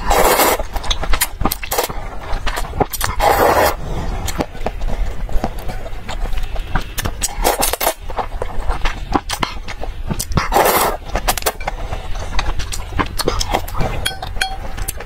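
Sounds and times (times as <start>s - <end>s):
slurping noodles: 0.0s - 1.0s, 1.6s - 4.6s, 10.4s - 14.0s
wet mouth clicks and chewing: 0.4s - 3.2s, 4.2s - 15.0s.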